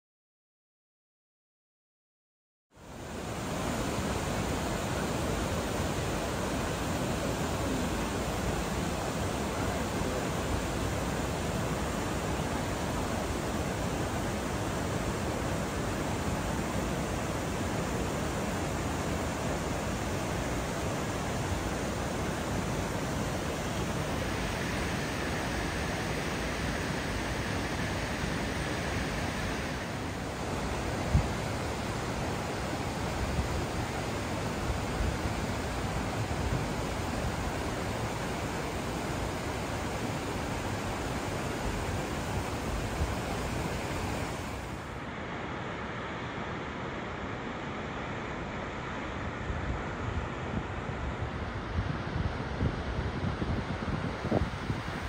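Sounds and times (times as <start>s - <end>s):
waterfall and river rapids rushing: 2.8s - 55.0s.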